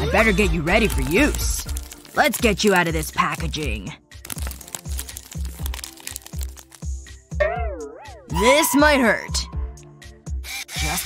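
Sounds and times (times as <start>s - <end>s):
background music with steady beat: 0.0s - 10.8s
plastic packaging crinkling: 0.7s - 6.9s.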